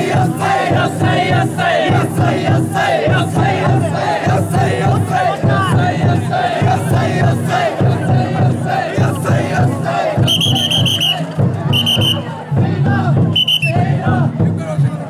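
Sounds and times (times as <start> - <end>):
taiko drum beating: 0.0 - 14.9
crowd chanting in unison: 0.0 - 15.0.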